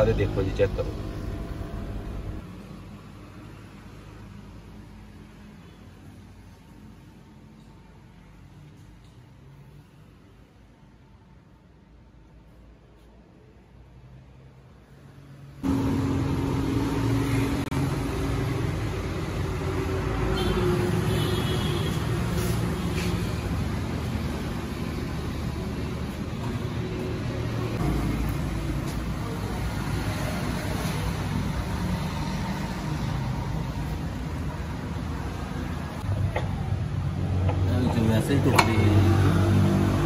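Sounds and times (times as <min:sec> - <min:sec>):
engine rumble: 0:00.0 - 0:02.8, 0:15.6 - 0:21.2, 0:22.2 - 0:40.0.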